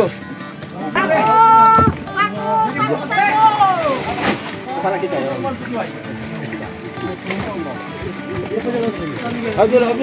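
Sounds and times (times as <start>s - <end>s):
people calling out: 0.8s - 5.2s.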